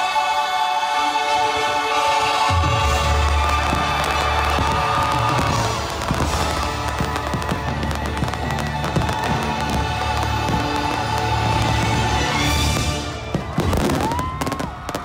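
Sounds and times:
fireworks launching and bursting: 0:02.2 - 0:15.0.

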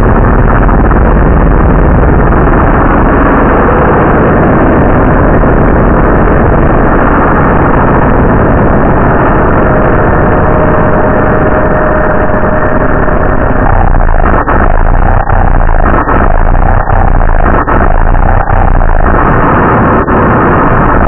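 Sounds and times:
distorted rumbling noise: 0:00.0 - 0:21.0.

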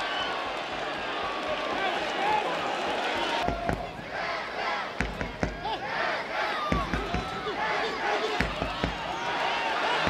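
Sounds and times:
players and spectators shouting: 0:00.0 - 0:10.0.

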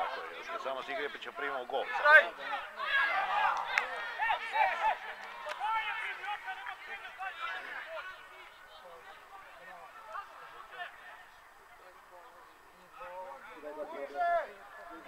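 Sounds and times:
voices shouting and calling: 0:00.0 - 0:15.0.

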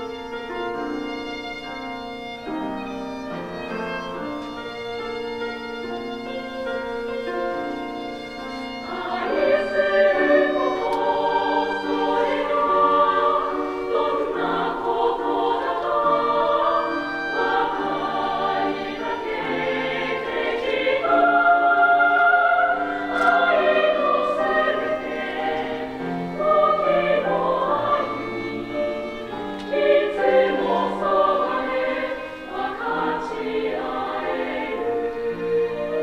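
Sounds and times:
girls' choir singing: 0:08.8 - 0:36.0.

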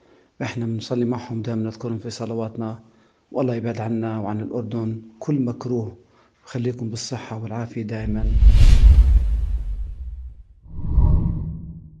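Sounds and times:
whoosh sweep: 0:08.0 - 0:11.8
low rumbling whoosh: 0:08.0 - 0:12.0.

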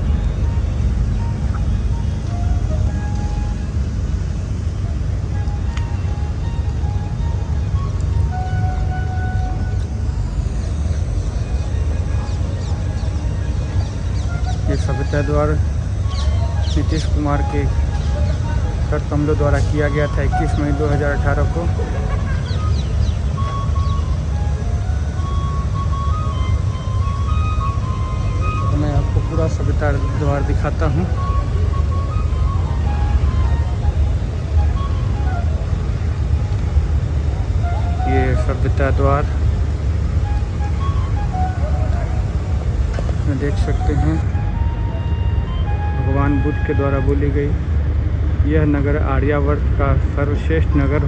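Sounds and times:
low outdoor rumble: 0:00.0 - 0:51.0
faint distant voices: 0:09.6 - 0:25.4.

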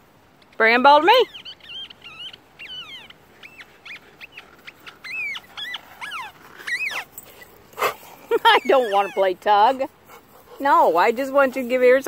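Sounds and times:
dog whining: 0:01.3 - 0:09.4.

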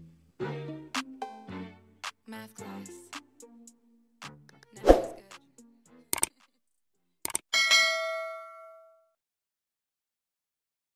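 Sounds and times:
bright bell ding: 0:07.6 - 0:09.1.

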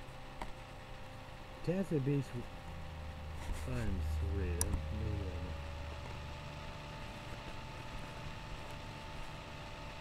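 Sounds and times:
low hum: 0:02.3 - 0:10.0.

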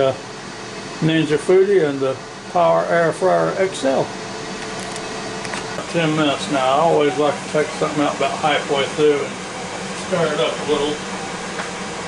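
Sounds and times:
air fryer fan whirring: 0:00.0 - 0:12.0.

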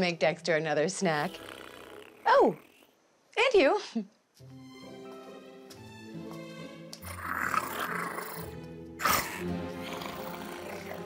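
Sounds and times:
background music: 0:04.4 - 0:11.0
creature growling: 0:07.0 - 0:08.4, 0:09.0 - 0:11.0
creature roaring: 0:07.1 - 0:08.4, 0:09.0 - 0:11.0.

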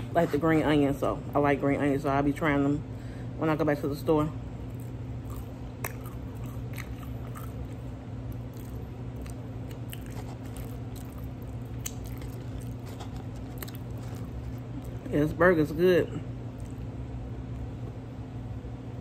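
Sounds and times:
steady low hum: 0:00.0 - 0:19.0
chewing burger: 0:04.6 - 0:15.1, 0:16.4 - 0:17.0.

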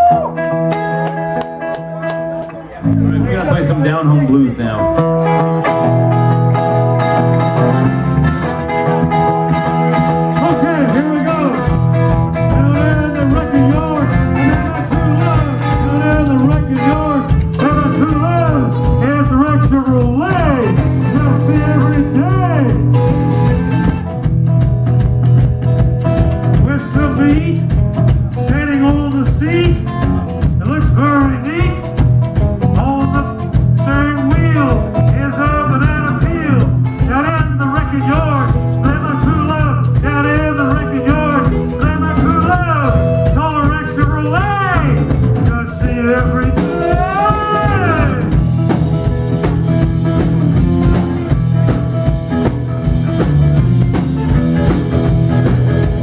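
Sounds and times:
bass and drums: 0:00.0 - 0:56.0
electric guitar: 0:00.0 - 0:56.0.

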